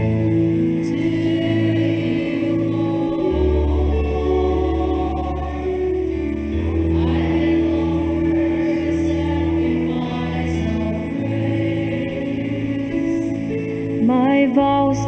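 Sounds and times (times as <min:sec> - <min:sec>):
church singing over held chords: 0:00.0 - 0:15.0.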